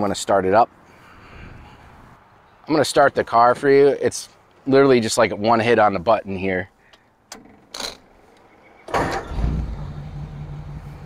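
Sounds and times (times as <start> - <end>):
car engine starting and idling: 8.8 - 11.0.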